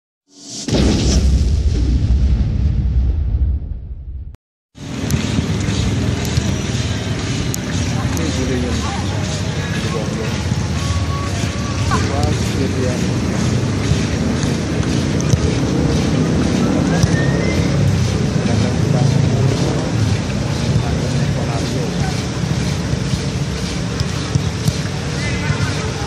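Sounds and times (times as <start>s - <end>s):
deep boom intro sting: 0.4s - 4.4s
faint distant shouts: 25.0s - 26.0s.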